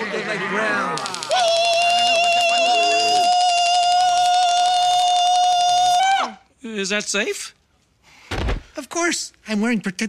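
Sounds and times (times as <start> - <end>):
long high-pitched wail: 1.0 - 6.4.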